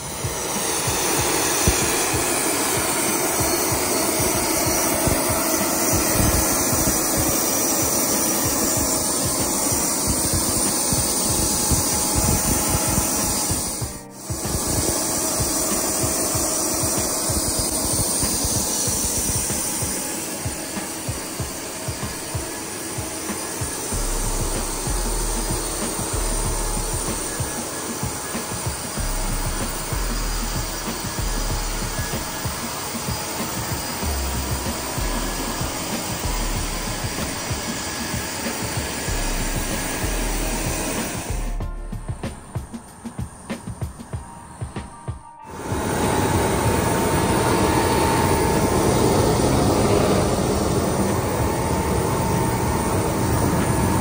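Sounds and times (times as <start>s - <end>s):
loud rushing airfield noise: 0.0s - 54.0s.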